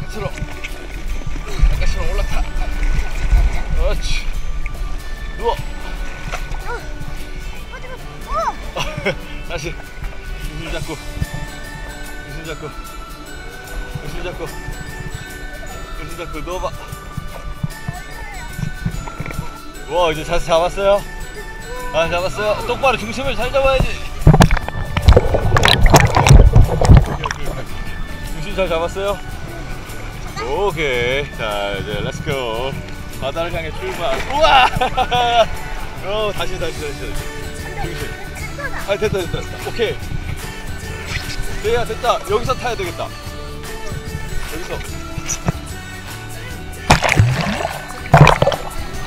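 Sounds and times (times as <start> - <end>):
background music with sustained notes: 0.0 - 49.0
seawater splashing and sloshing: 22.7 - 38.3, 46.9 - 49.0
wave buffeting the microphone: 23.1 - 36.9.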